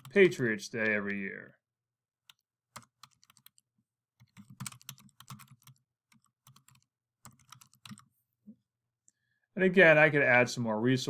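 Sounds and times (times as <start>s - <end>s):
typing on computer keyboard: 2.2s - 3.6s, 4.2s - 8.1s.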